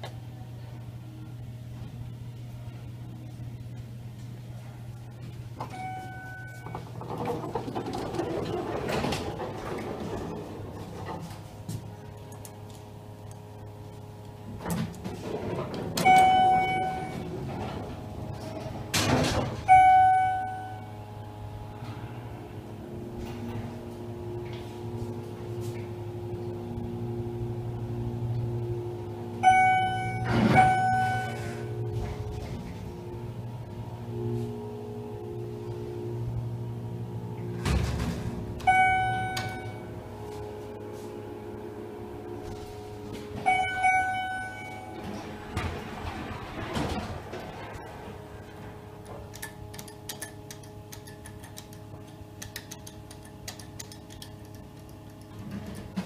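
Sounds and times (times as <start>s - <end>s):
elevator electronic beep: 5.6s - 11.1s, 15.5s - 21.4s, 29.4s - 36.4s, 37.4s - 42.7s, 43.3s - 48.5s.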